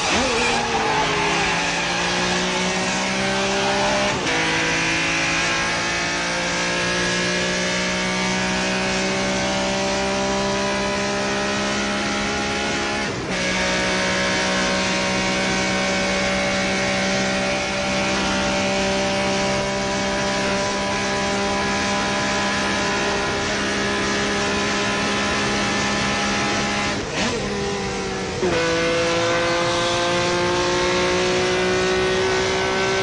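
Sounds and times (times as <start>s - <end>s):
car engine revving hard: 0.0s - 33.0s.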